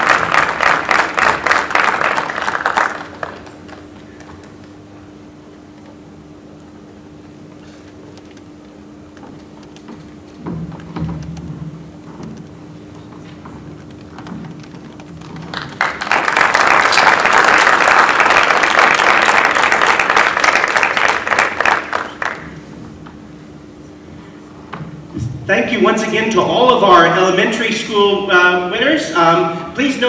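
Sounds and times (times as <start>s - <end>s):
audience applauding: 0.0s - 4.7s, 13.8s - 22.6s
low steady hum: 0.0s - 30.0s.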